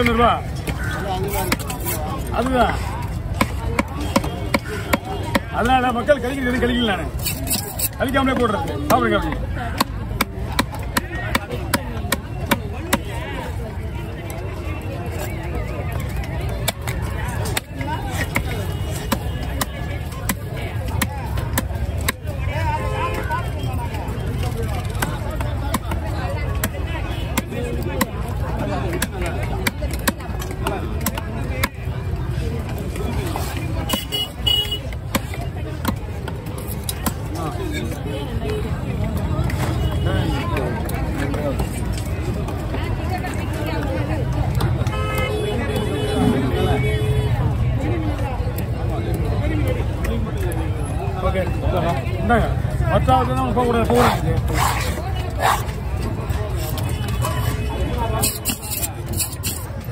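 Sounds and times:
murmur of voices: 0.0s - 59.9s
cleaver chopping fish on wood: 8.8s - 13.1s.

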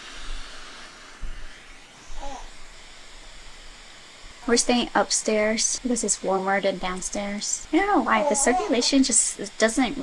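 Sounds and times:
white noise hiss from phone speaker: 0.0s - 10.0s
soft voice sound: 8.1s - 9.0s.

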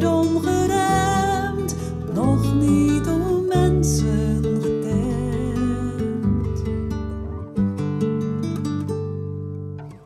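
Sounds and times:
slow song with acoustic guitar: 0.0s - 10.0s.

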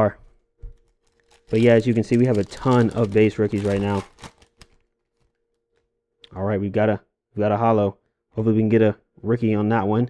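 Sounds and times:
foil pack crinkling: 0.7s - 5.4s.

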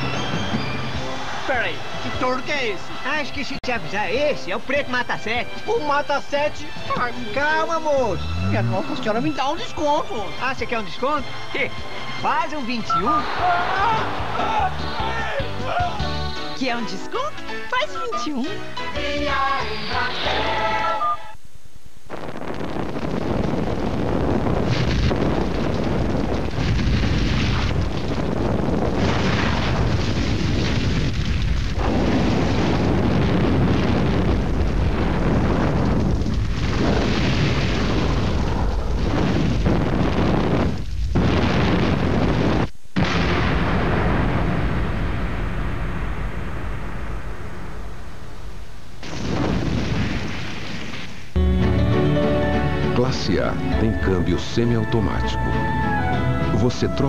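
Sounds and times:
flames burning: 0.0s - 3.3s, 6.5s - 12.2s, 21.6s - 51.4s
explosions: 22.1s - 51.4s.

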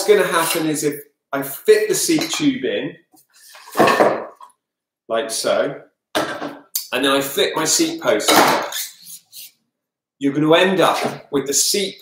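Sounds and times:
bamboo tubes scraping clatter: 3.4s - 4.5s.

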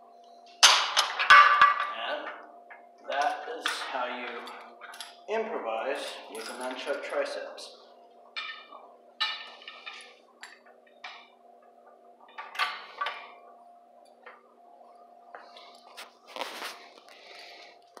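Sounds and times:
steady low hum: 0.0s - 18.0s
metal chain clinking: 3.2s - 5.2s, 6.2s - 7.1s.

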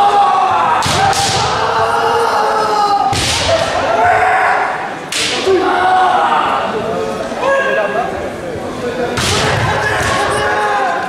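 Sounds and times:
sharp crack ringing in hall: 0.7s - 1.8s, 3.0s - 4.0s, 5.0s - 5.6s, 9.1s - 11.0s.

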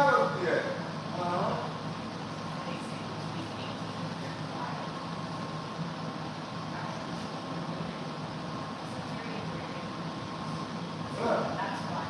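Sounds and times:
constant low hum: 0.0s - 12.0s.

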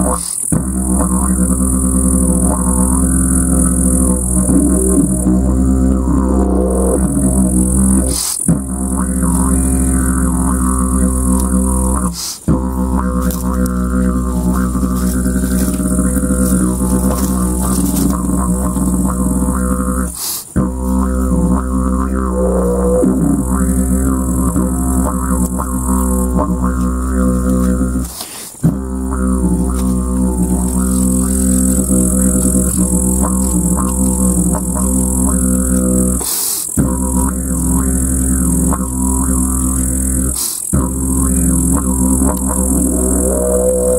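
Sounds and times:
didgeridoo buzzing drone: 0.0s - 43.9s.

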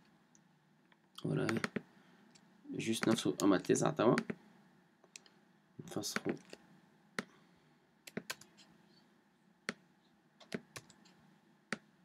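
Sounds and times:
computer keys and mouse clicking: 1.4s - 1.8s, 8.1s - 8.6s, 10.4s - 11.8s.

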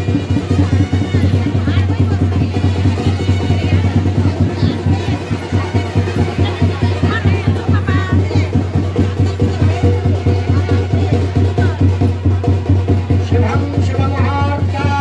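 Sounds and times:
fast steady drumming: 0.0s - 15.0s.

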